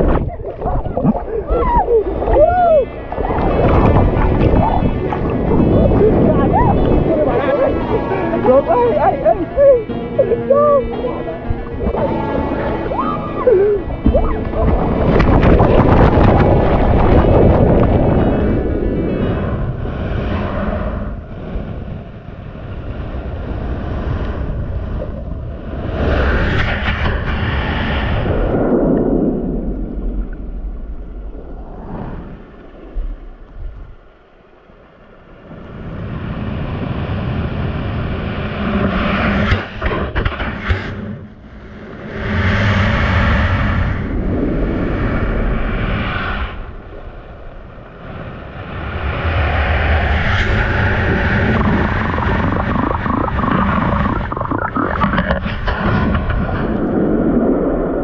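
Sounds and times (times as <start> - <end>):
underwater churning surf: 0.0 - 58.0.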